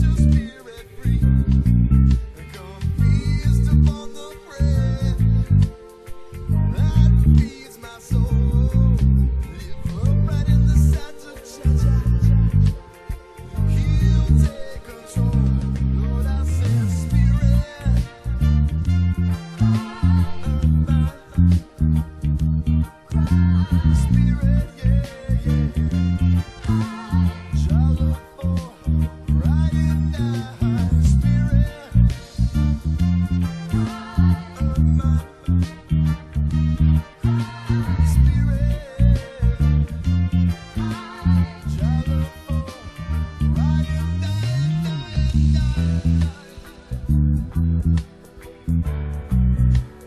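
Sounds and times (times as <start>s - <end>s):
electric bass line: 0.0s - 50.0s
reggae song: 0.0s - 50.0s.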